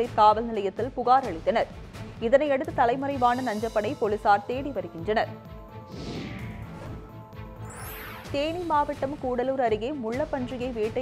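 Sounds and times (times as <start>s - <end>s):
falling swoosh: 5.9s - 7.1s
rising swish: 5.9s - 8.4s.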